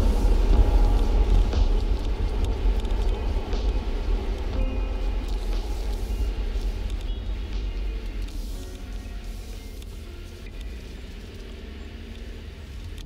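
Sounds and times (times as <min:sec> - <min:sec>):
hiss: 0:00.0 - 0:13.0
low steady rumble: 0:00.0 - 0:13.0.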